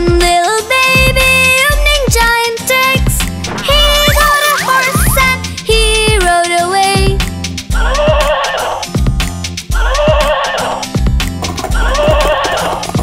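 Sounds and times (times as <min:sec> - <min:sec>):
children's music with steady beat: 0:03.2 - 0:07.8.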